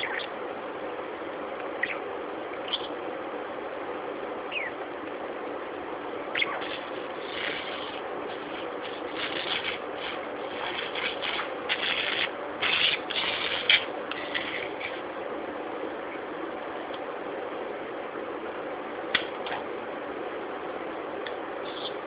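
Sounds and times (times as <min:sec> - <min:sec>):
budgerigar chirping and chattering: 0:00.0 - 0:00.3, 0:01.8 - 0:02.0, 0:02.6 - 0:03.0, 0:04.5 - 0:04.8, 0:06.4 - 0:08.0
steady background hum: 0:00.0 - 0:22.0.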